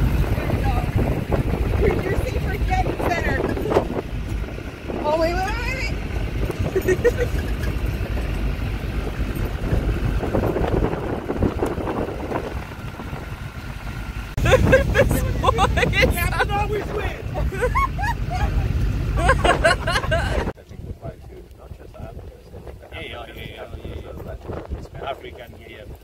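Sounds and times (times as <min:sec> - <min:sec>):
voices: 0:00.0 - 0:08.3, 0:14.4 - 0:26.0
pickup truck rumbling: 0:00.0 - 0:26.0
wind buffeting microphone: 0:00.0 - 0:26.0.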